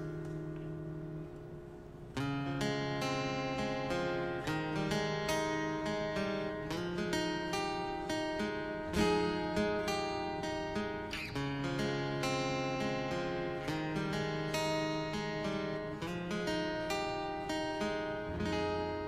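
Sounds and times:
acoustic guitar picked notes: 0:00.0 - 0:19.0.

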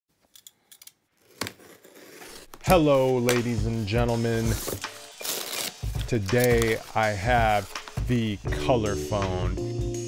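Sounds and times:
knife scraping packing tape: 0:01.2 - 0:02.6, 0:05.1 - 0:06.8.

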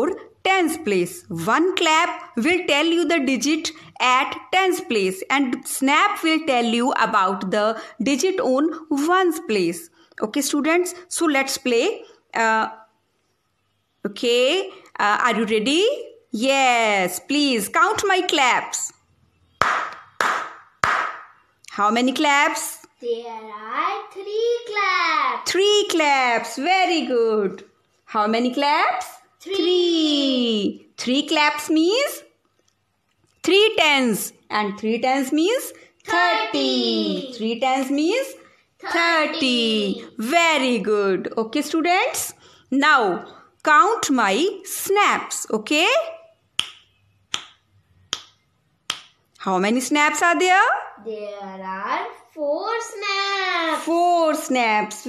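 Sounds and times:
hand claps: 0:19.6 - 0:21.4, 0:46.6 - 0:49.2
finger snaps: 0:46.6 - 0:49.2.

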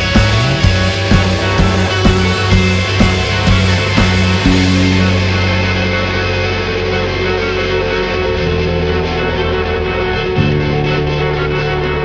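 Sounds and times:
distorted guitar with echo: 0:00.0 - 0:12.0
steady low bass note: 0:00.0 - 0:12.0.

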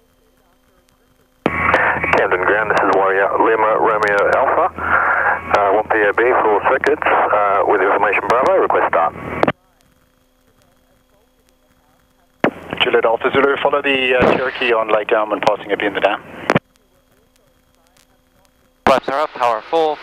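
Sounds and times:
radio voice transmission: 0:00.0 - 0:20.0.

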